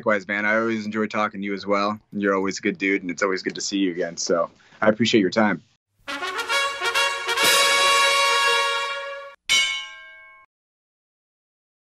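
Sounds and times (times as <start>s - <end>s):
held brass chord: 6.1s - 9.4s
bell-like chime: 9.5s - 10.5s.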